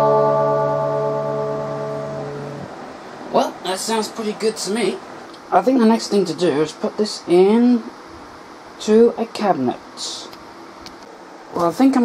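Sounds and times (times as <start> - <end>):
electric guitar chord ringing: 0.0 - 3.3.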